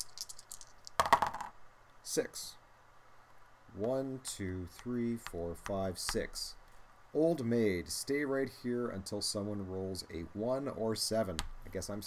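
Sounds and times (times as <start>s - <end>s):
die rattling in a hand: 0.0s - 1.6s
die clattering on a cardboard board: 0.1s - 1.6s.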